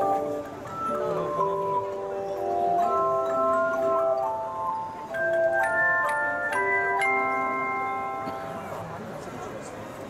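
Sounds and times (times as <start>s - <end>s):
handchime chords ringing: 0.0s - 8.6s.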